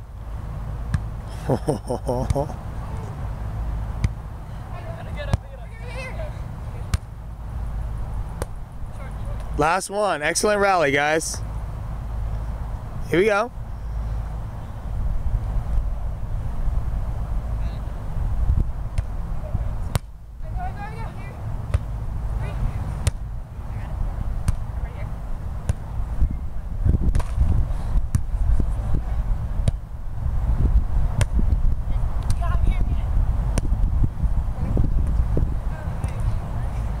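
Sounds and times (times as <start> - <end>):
hands slapping volleyball: 2.2 - 2.5, 27.1 - 27.4.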